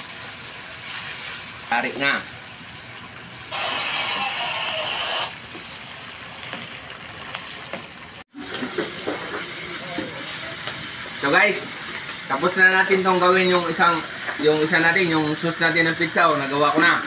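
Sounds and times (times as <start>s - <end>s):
meat sizzling in a wok: 0.0s - 17.0s.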